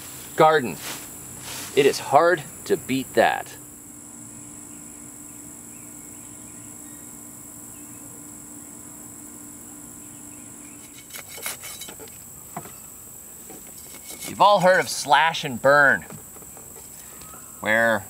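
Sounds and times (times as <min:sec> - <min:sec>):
insects chorusing: 0:00.0 - 0:18.0.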